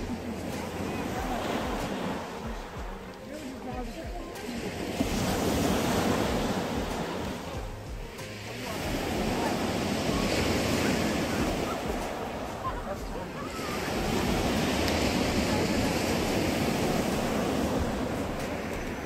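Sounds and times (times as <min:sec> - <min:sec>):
surf breaking on a beach: 0:00.0 - 0:19.0
wind on microphone: 0:00.0 - 0:19.0.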